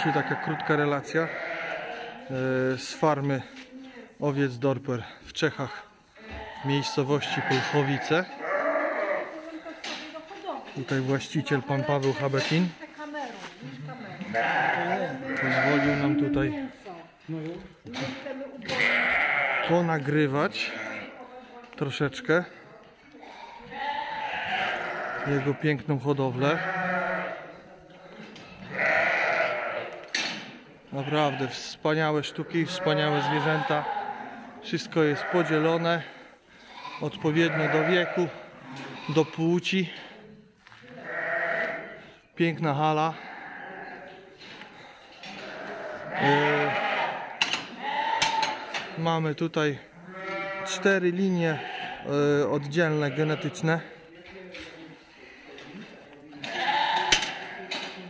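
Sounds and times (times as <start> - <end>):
sheep bleating: 0.0 - 2.4, 6.1 - 9.5, 14.1 - 16.8, 17.5 - 21.2, 23.2 - 27.4, 28.6 - 30.0, 30.9 - 39.5, 40.9 - 42.0, 43.1 - 44.2, 45.2 - 49.0, 49.9 - 53.9, 56.4 - 57.7.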